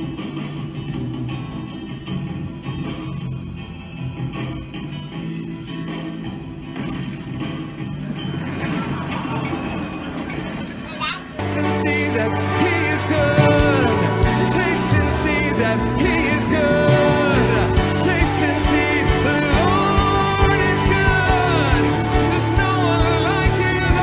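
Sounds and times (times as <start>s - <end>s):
loud song with low notes: 0.0s - 24.0s
live worship band playing: 11.4s - 24.0s
voices singing over music: 11.4s - 24.0s.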